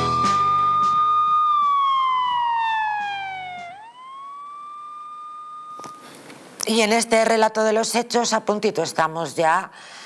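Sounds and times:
electronic tone sliding in pitch: 0:00.0 - 0:06.2.

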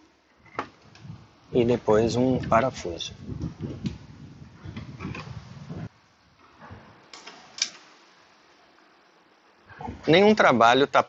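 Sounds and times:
clicks and handling noise: 0:06.4 - 0:07.9.

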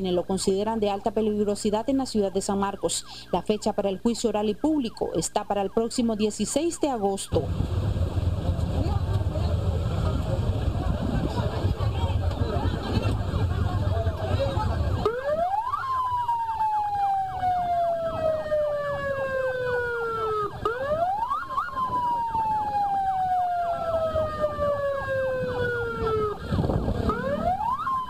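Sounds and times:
police siren wailing: 0:02.4 - 0:28.0
crowd voices: 0:07.4 - 0:28.0.

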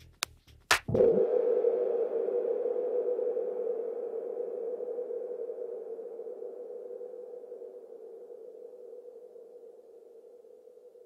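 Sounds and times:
low synthesizer drone: 0:00.9 - 0:11.0.

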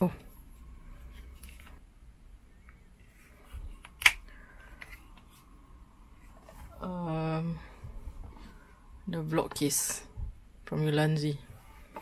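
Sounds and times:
sharp plastic click: 0:03.8 - 0:04.2.

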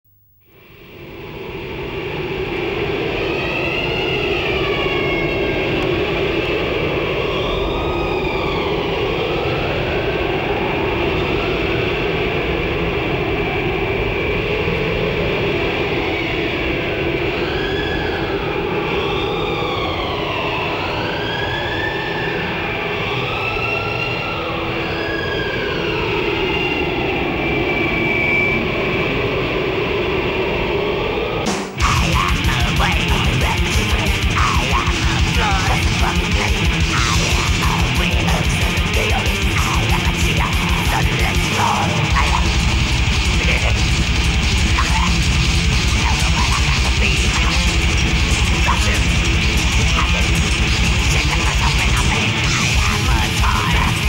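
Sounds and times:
distorted heavy metal music: 0:31.2 - 0:54.0
dense steady rumble: 0:31.8 - 0:54.0.

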